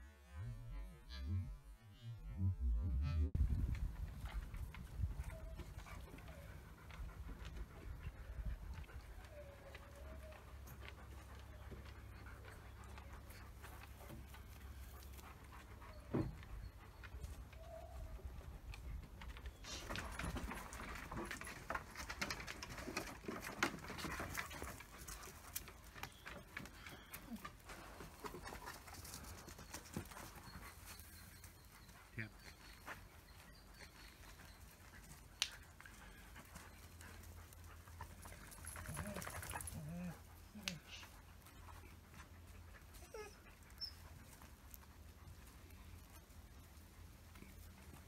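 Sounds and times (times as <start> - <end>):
dogs panting: 2.2 - 48.0.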